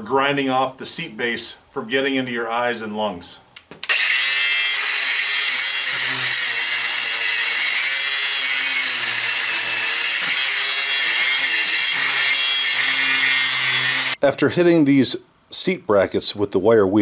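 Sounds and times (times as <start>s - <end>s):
angle grinder motor hum: 3.9s - 14.2s
wire wheel scouring steel: 3.9s - 14.2s.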